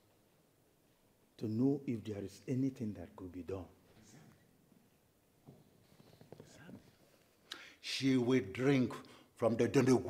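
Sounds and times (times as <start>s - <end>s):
faint whispered speech: 6.3s - 7.1s.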